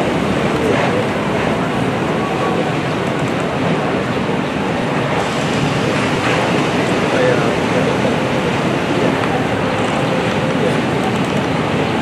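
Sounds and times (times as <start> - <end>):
water rushing through sluice gates: 0.0 - 12.0.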